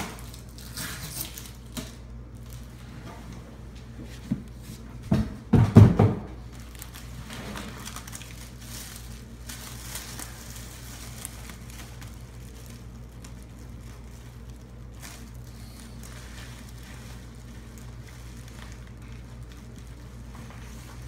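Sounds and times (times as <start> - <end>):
plastic bag crinkling: 0.0 - 2.8, 6.4 - 21.0
steady low hum: 0.0 - 21.0.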